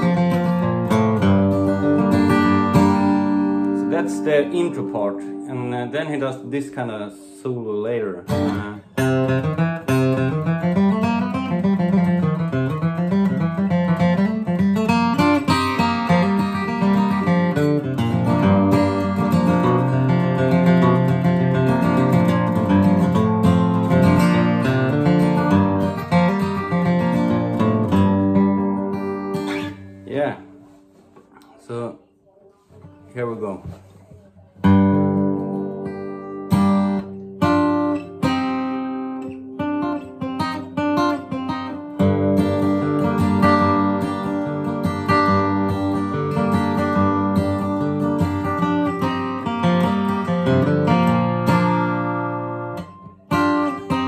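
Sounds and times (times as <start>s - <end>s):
flatpicked acoustic guitar: 0.0s - 54.0s.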